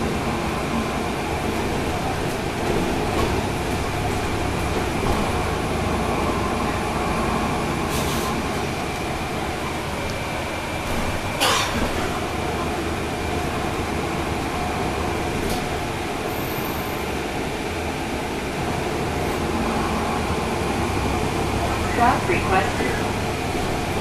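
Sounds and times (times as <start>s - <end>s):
bus diesel engine droning: 0.0s - 24.0s.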